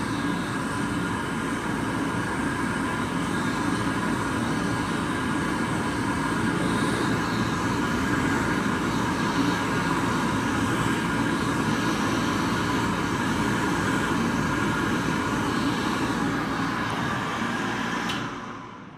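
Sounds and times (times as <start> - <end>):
hand dryer blowing: 0.0 - 18.9.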